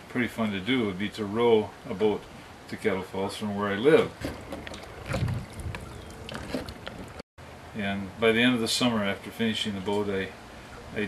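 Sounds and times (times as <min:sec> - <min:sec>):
oars pulling through water: 0:04.0 - 0:07.2
wind on microphone: 0:04.1 - 0:07.2.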